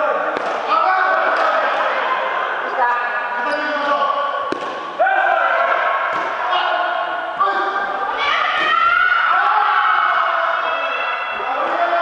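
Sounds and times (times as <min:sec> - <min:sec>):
voices echoing in a hall: 0:00.0 - 0:12.0.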